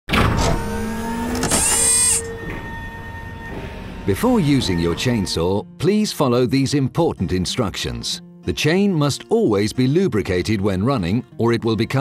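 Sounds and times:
small motor whining: 0.4 - 2.8.

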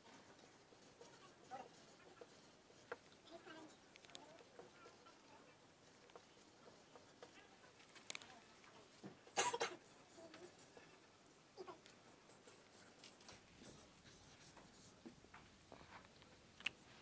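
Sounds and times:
marker scratching on whiteboard: 0.0 - 8.2, 9.0 - 11.0, 11.7 - 15.1.

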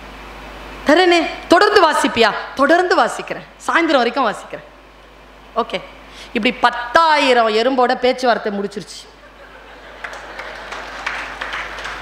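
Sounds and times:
audience applause: 9.6 - 12.0.

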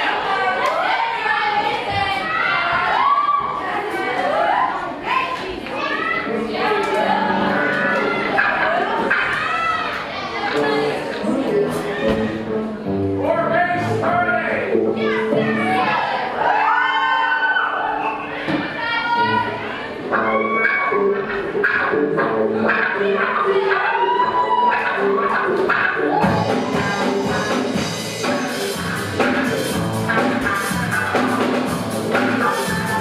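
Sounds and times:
live band playing: 6.3 - 9.8, 19.2 - 33.0
electric guitars sustained notes: 19.2 - 33.0.

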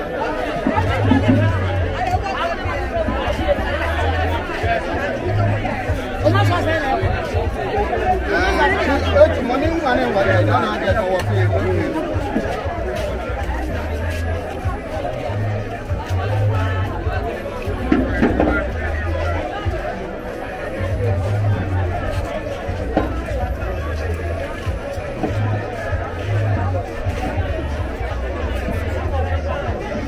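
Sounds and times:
crowd voices talking and calling: 0.0 - 30.0
music playing: 0.0 - 30.0.

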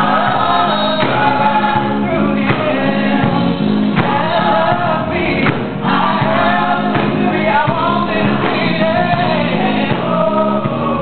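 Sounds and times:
gospel choir singing: 0.0 - 11.0
steady beat: 0.0 - 11.0.

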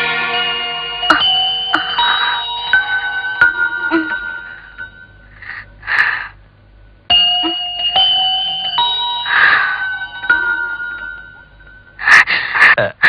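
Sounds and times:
bell-like keyboard chords: 0.0 - 5.8, 7.1 - 12.0.

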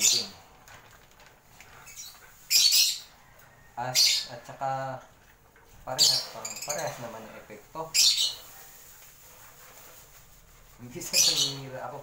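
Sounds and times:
plastic bag rustling: 0.0 - 2.9, 5.7 - 12.0.

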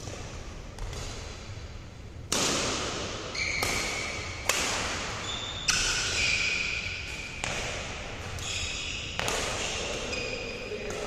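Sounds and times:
racket striking shuttlecock: 2.2 - 8.4, 9.0 - 10.1
shoes squeaking on court floor: 3.3 - 4.4, 5.2 - 11.0.

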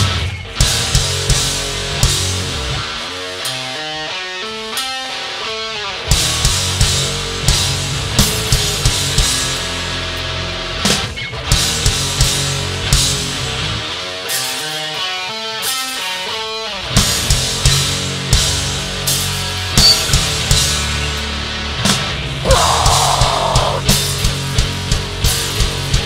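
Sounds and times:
hardcore band playing loud: 0.0 - 26.0.

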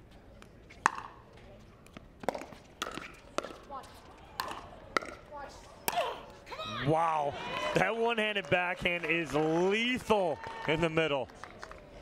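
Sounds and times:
paddles striking plastic ball: 2.2 - 3.6, 4.4 - 5.2.

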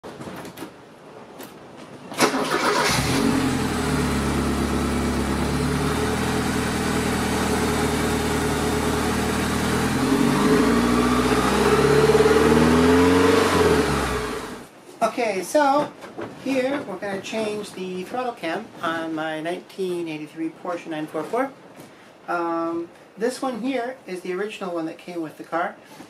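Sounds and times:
car engine starting and revving: 2.2 - 14.7.

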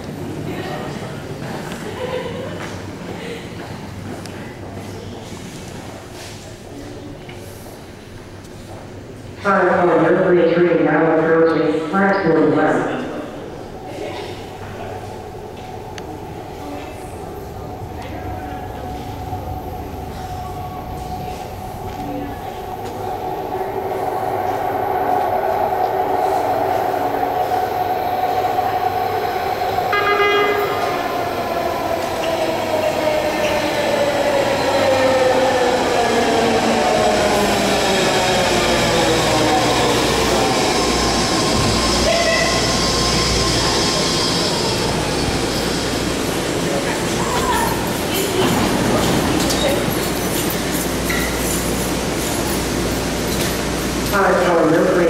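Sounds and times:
train rumbling and braking: 0.0 - 55.0
train horn note: 29.9 - 31.0.

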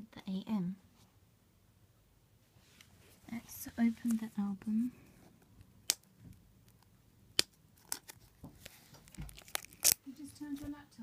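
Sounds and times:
plastic packaging tearing: 7.4 - 10.0.

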